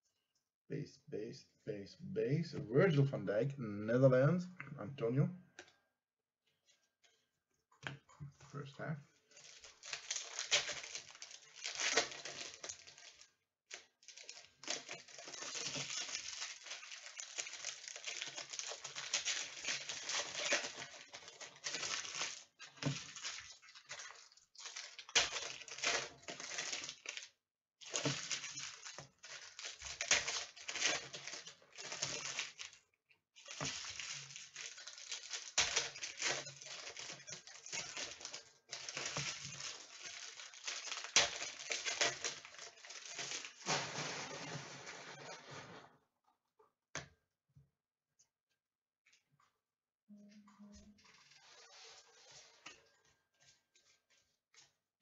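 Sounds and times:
foil wrappers crinkling and tearing: 9.2s - 45.8s.

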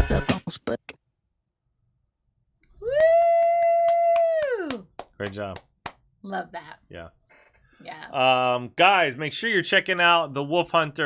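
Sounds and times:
light claps: 3.8s - 6.0s.

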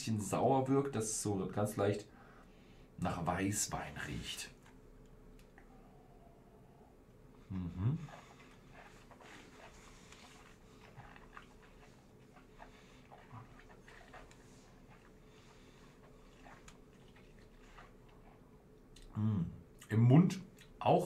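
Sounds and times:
mouth clicks and lip smacks: 4.6s - 5.7s, 7.6s - 19.9s, 20.5s - 20.8s
swallowing: 7.4s - 19.9s.

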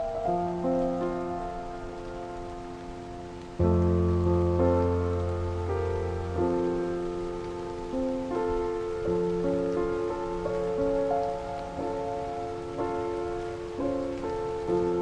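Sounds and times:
piano chords: 0.0s - 15.0s
rain: 0.0s - 15.0s.

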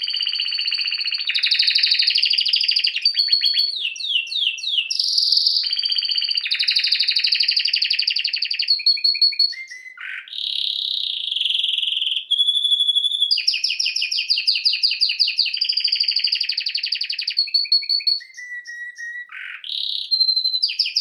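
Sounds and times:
canary singing trills: 0.0s - 21.0s.

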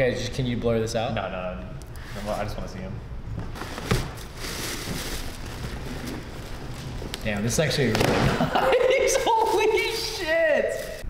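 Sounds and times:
plastic and tissue paper rustling: 3.4s - 11.0s.

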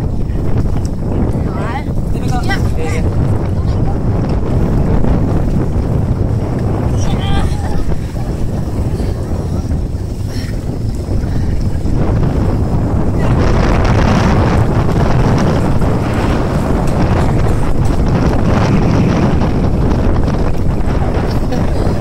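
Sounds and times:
wind buffeting microphone: 0.0s - 22.0s.

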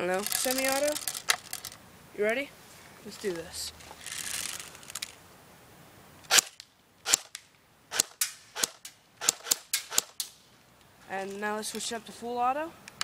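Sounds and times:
airsoft gun shots: 6.3s - 10.3s.

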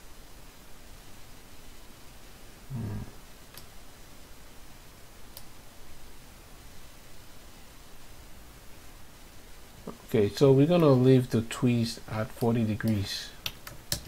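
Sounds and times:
faint room hiss: 0.0s - 14.0s
man's voice humming low: 2.7s - 3.2s.

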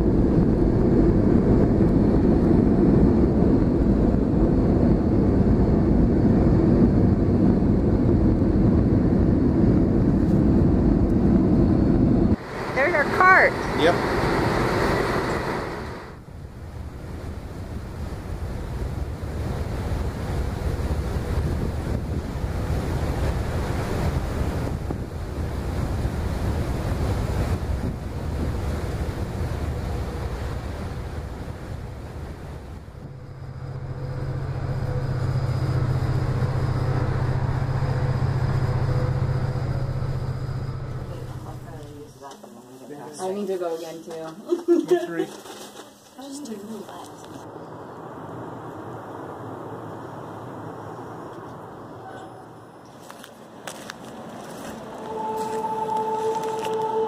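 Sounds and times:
low drone: 0.0s - 42.0s, 54.3s - 57.0s
low rumble: 0.0s - 42.1s
wind buffeting microphone: 0.0s - 42.1s
faint thin tone: 55.0s - 57.0s.

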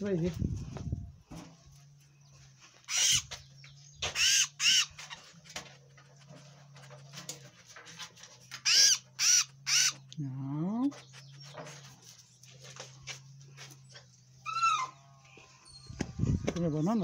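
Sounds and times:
bird harsh distress calls: 2.8s - 5.3s, 8.5s - 10.1s, 14.4s - 16.0s.

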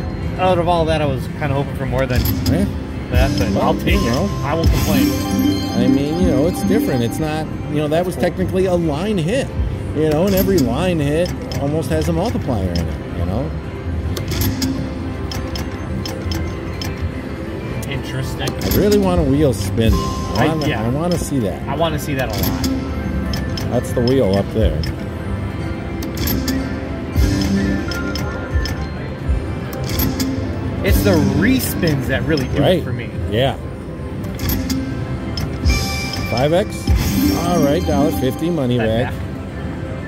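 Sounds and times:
slot machine game music: 0.0s - 40.0s
held chime tone: 3.6s - 7.8s.

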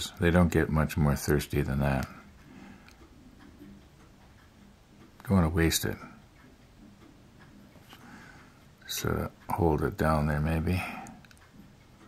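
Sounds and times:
faint ticking: 0.0s - 12.0s
low steady hum: 0.0s - 12.0s.

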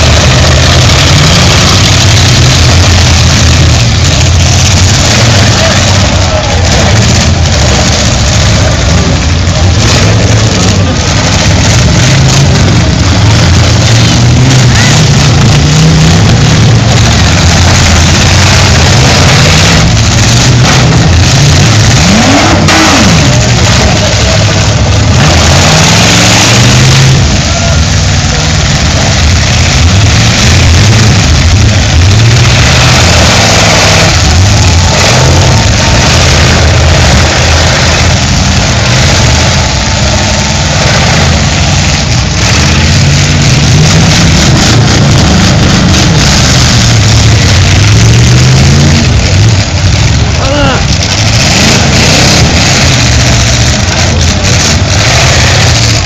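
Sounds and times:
car engines revving hard: 0.0s - 56.0s.

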